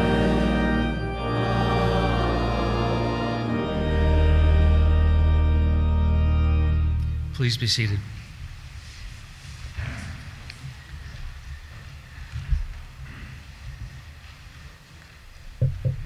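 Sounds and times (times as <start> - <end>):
people shuffling and rustling: 8.1 - 16.0
short knocks: 15.6 - 16.0.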